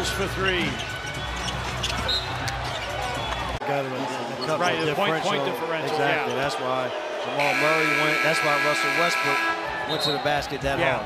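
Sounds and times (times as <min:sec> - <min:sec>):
crowd and arena rumble: 0:00.0 - 0:08.2.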